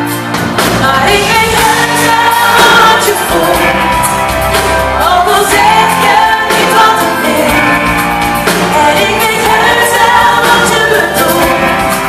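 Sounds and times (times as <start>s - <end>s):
band playing: 0.0s - 12.0s
bass guitar: 0.0s - 12.0s
woman singing into a microphone: 0.8s - 4.1s, 4.9s - 7.9s, 8.6s - 12.0s.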